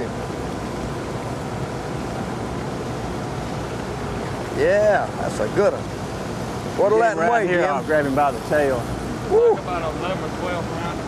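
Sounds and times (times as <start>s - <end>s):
water noise: 0.0s - 11.0s
wind: 0.0s - 11.0s.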